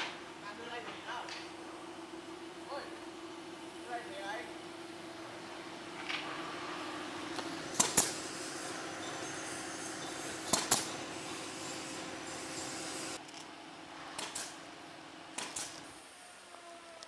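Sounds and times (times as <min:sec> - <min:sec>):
workshop hum: 0:00.0 - 0:17.0.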